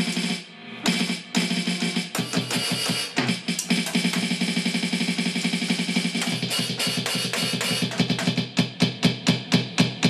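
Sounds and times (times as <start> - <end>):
electronic drum pad roll: 0.0 - 10.0.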